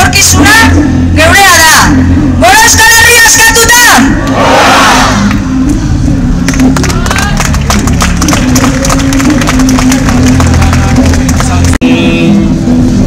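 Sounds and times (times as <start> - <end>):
music over sound system: 0.0 - 4.4, 5.0 - 13.0
crowd clapping and cheering: 6.3 - 11.8.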